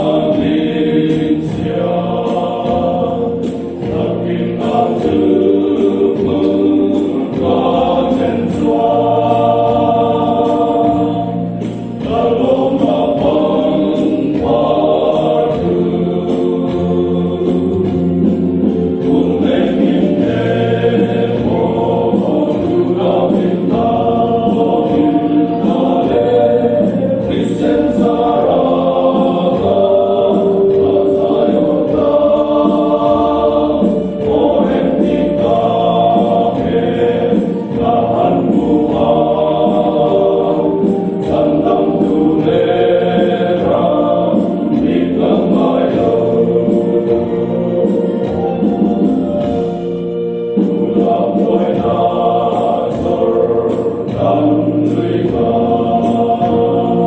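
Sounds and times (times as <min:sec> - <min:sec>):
men singing a hymn in harmony: 0:00.0 - 0:57.0.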